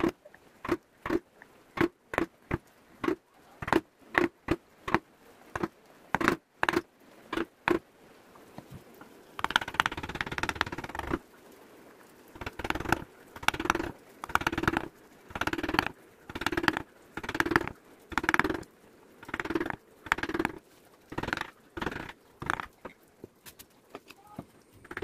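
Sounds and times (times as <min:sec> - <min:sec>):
carving gouge scraping wood: 0:09.4 - 0:11.2, 0:19.3 - 0:22.7.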